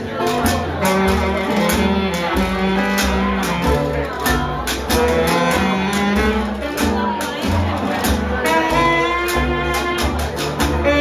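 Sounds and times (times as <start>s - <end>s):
saxophone: 0.0s - 7.4s, 8.0s - 11.0s
bass line: 0.0s - 11.0s
guitar: 0.0s - 11.0s
steady beat: 0.0s - 11.0s.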